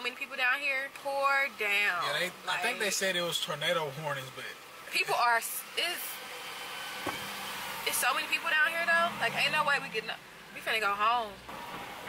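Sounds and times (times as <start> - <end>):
car cabin hiss: 6.4 - 8.9.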